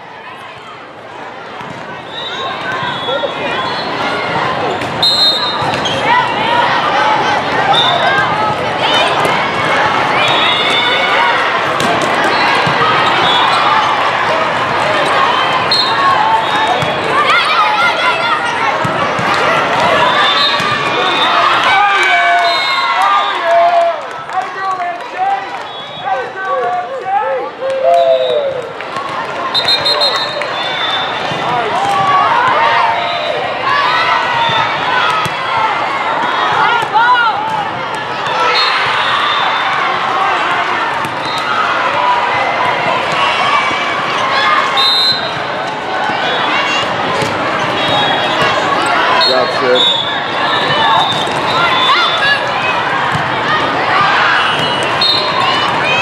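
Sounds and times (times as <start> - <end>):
people calling and shouting: 0.0 - 56.0
volleyballs hit and bouncing: 1.5 - 3.0, 3.9 - 6.4, 7.2 - 21.8, 28.5 - 32.9, 34.2 - 38.5, 39.8 - 49.1, 50.5 - 56.0.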